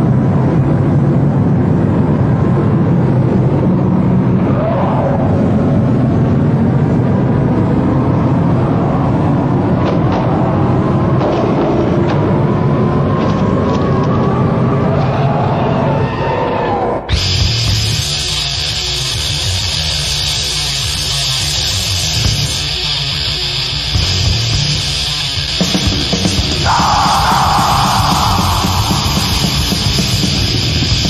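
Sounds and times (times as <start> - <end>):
metal band with distorted guitars: 17.1 - 31.0
rumbling intro with gliding tones: 26.4 - 31.0.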